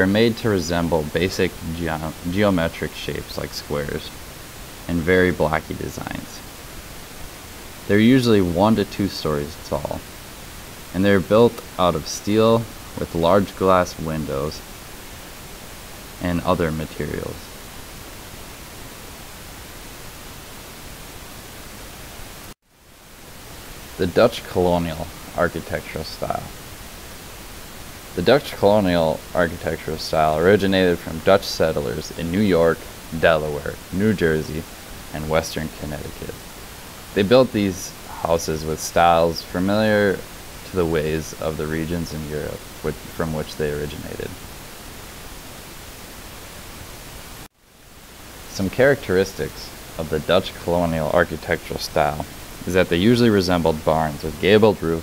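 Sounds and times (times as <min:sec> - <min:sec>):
recording noise hiss: 0:00.0 - 0:55.0.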